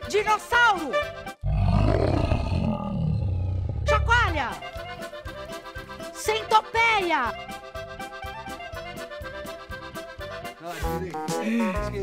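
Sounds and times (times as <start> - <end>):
music: 0.0 - 1.5, 3.9 - 12.0
deep growling dinosaur roar: 1.4 - 4.3.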